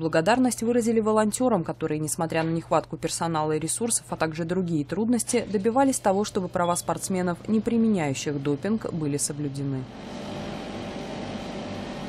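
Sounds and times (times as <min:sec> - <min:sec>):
lab equipment humming and whirring: 0:00.0 - 0:12.0.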